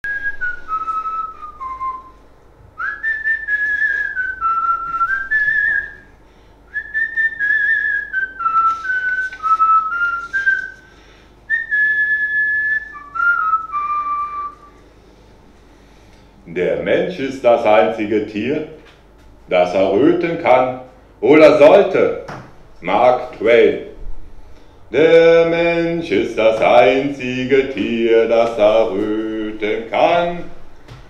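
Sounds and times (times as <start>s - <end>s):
person whistling a tune: 0.0s - 2.2s, 2.8s - 6.1s, 6.7s - 10.9s, 11.5s - 14.8s.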